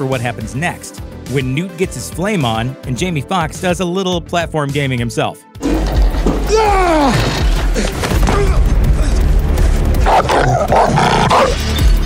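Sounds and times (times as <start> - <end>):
action film music with deep bass: 0.0 - 12.0
loud rough cry: 6.5 - 7.5.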